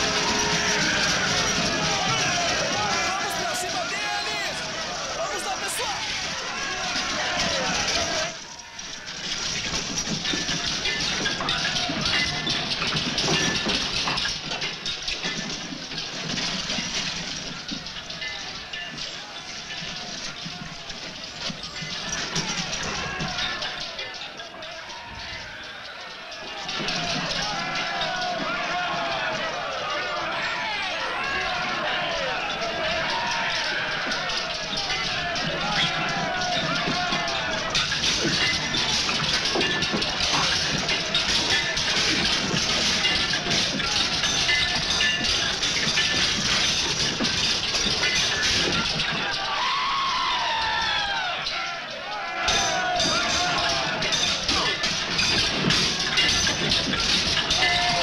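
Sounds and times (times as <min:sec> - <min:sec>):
men yelling and shouting: 0:00.0 - 0:14.3, 0:18.0 - 0:58.0.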